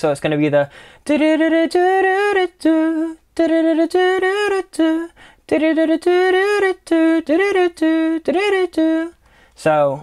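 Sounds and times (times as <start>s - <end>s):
person singing unaccompanied: 0.0s - 10.0s.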